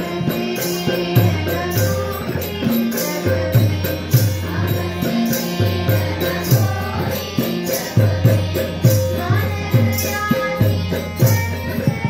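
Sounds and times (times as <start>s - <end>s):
children's group singing: 0.0s - 12.0s
harmonium drone: 0.0s - 12.0s.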